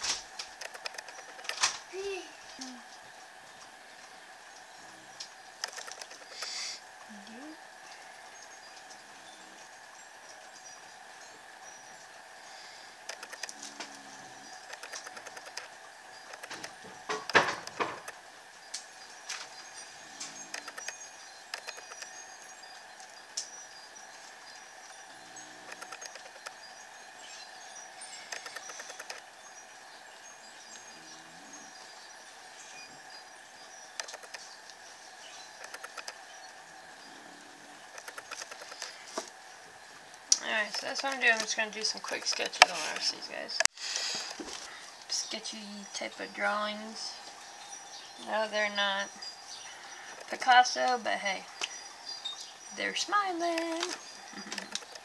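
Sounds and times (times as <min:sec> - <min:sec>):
faint high hum: 0:00.0 - 0:55.0.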